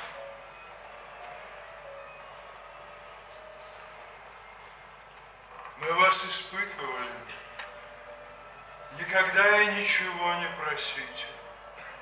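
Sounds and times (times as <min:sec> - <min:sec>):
faint low stage music tones: 0:00.0 - 0:12.0.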